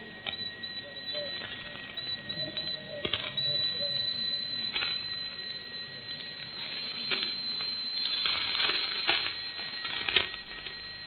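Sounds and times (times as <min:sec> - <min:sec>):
high-pitched whine: 0:00.0 - 0:11.0
tape hiss: 0:00.0 - 0:11.0.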